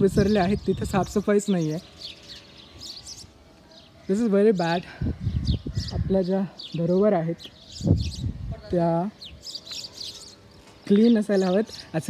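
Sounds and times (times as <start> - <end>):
birds chirping faintly: 0.0 - 12.0
quiet outdoor ambience: 0.0 - 12.0.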